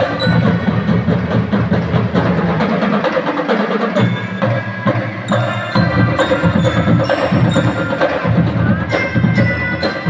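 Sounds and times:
mallet keyboards: 0.0 - 2.6, 4.0 - 10.0
marching drums: 0.0 - 10.0.

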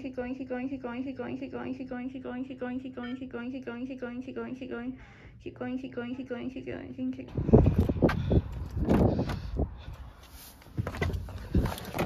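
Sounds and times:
person breathing hard and fast: 7.3 - 11.9.

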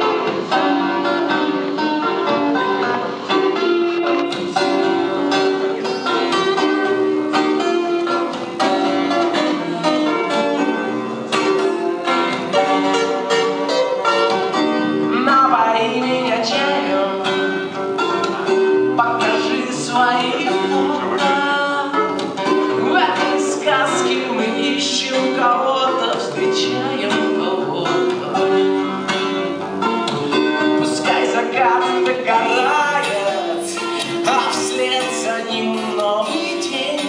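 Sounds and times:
acoustic guitar strummed: 0.0 - 37.0
man singing: 4.4 - 6.7, 15.1 - 17.4, 19.0 - 28.7, 30.8 - 37.0.

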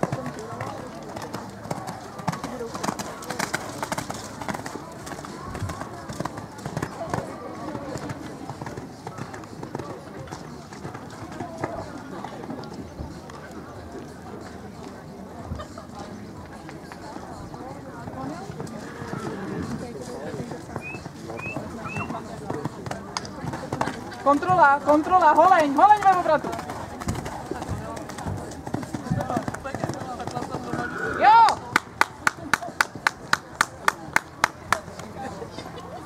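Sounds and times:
horse cantering on sand: 0.0 - 13.4, 17.9 - 31.6
people talking in background: 0.0 - 36.0.

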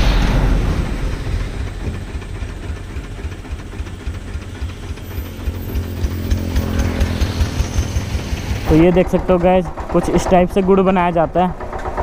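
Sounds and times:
engine running with pulsing rumble: 0.0 - 12.0.

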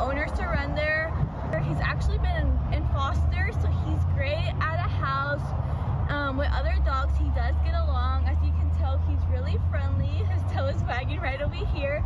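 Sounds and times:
woman talking: 0.0 - 12.0.

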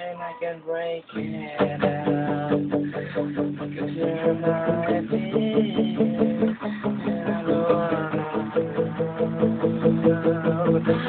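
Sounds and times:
acoustic guitar strumming: 1.1 - 11.0.

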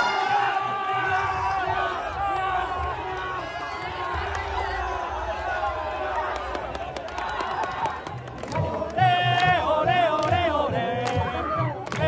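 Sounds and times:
crowd shouting and cheering: 0.0 - 12.0.

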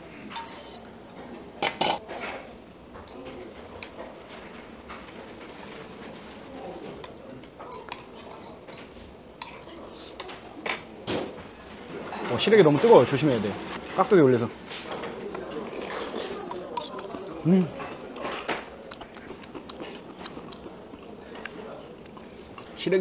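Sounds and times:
metal spoon clinking on bowls: 0.3 - 0.9.

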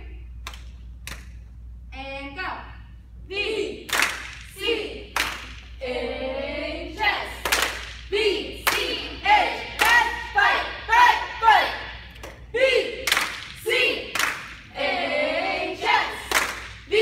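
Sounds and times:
hand claps: 0.4 - 1.4, 3.9 - 4.5, 5.2 - 5.7, 7.4 - 9.0, 9.8 - 10.1, 13.0 - 14.6, 16.2 - 16.9
girls chanting a cheer: 3.3 - 17.0.

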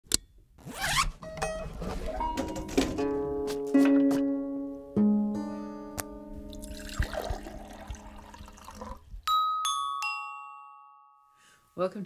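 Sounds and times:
plucked mandolin notes: 1.2 - 6.6.

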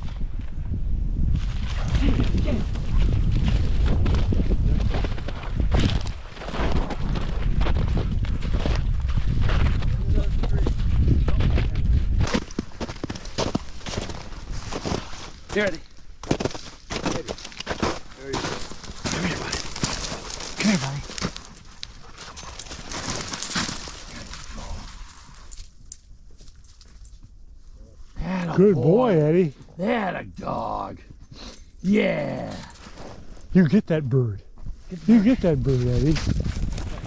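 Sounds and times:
wind buffeting microphone: 0.0 - 15.0, 34.6 - 37.0
footsteps crunching in snow: 1.4 - 25.5, 34.6 - 37.0
boots crunching through snow: 12.3 - 15.6, 16.2 - 21.4
twigs rustling: 16.3 - 27.2.

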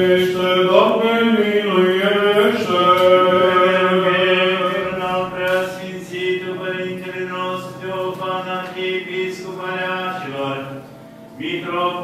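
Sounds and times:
men chanting: 0.0 - 10.8.

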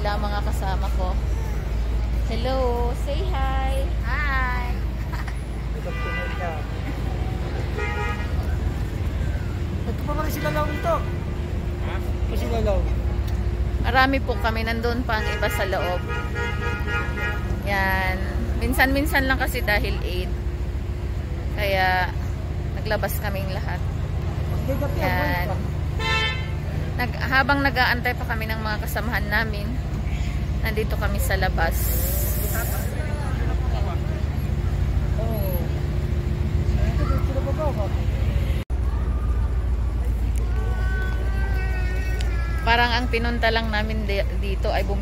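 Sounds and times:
road traffic rumble: 0.0 - 45.0
car horn toot: 5.8 - 6.6, 26.0 - 26.6.

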